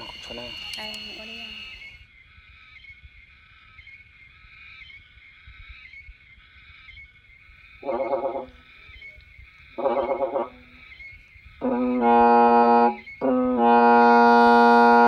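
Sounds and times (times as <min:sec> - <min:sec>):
bamboo reed pipe notes: 0:00.0 - 0:02.0, 0:07.8 - 0:11.0, 0:11.6 - 0:15.0
high-pitched background drone: 0:00.0 - 0:02.1.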